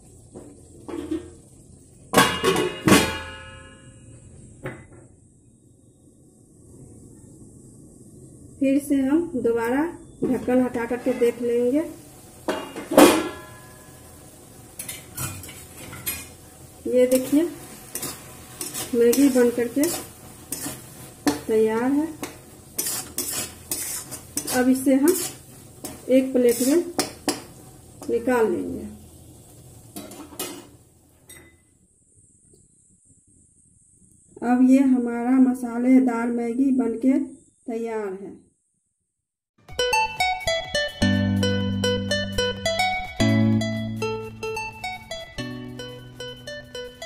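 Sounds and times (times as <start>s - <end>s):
noodles sizzling in pan: 0.0s - 4.3s, 8.0s - 31.7s, 40.1s - 47.0s
metal lid clanking on pan: 2.2s - 3.9s, 12.5s - 13.9s, 14.8s - 16.4s
metal spatula scraping metal pan: 10.4s - 11.5s, 14.8s - 16.4s, 17.0s - 27.5s, 30.0s - 30.7s.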